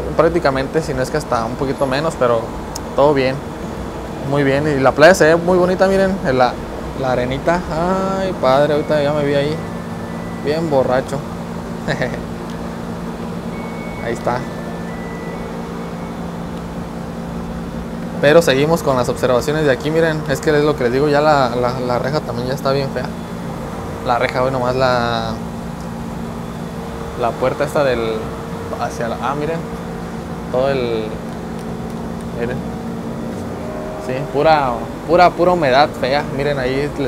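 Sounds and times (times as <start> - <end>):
low machine hum: 0.0 - 37.0
level tones: 6.6 - 37.0.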